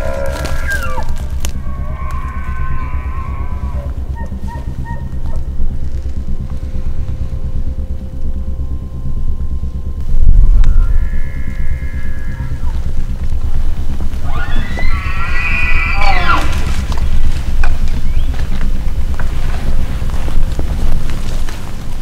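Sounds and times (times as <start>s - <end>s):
elk bugling whistle: 0.0s - 5.4s, 10.3s - 13.4s, 14.2s - 17.0s
music with low pulse: 0.0s - 22.0s
deep boom: 10.0s - 14.0s.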